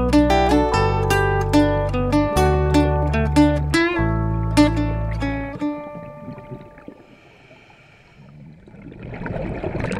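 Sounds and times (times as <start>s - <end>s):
underwater exhaust bubbles: 5.6s - 9.9s.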